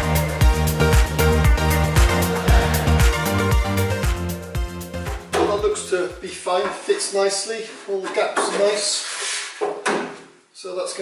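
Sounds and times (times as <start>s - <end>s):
man talking: 5.4s - 9.1s, 10.6s - 11.0s.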